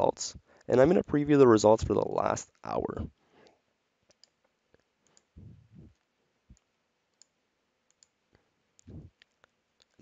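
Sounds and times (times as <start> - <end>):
computer mouse clicks: 4.0 - 8.2, 8.8 - 10.0
soft low bump: 5.4 - 6.0.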